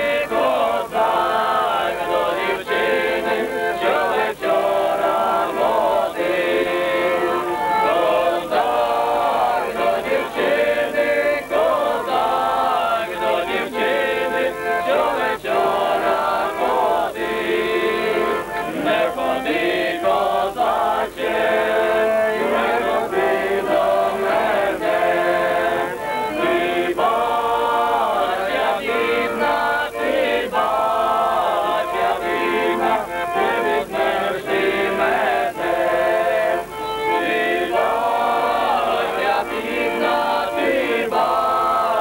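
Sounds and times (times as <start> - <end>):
accordion: 0.0 - 42.0
men singing folk song: 0.0 - 42.0.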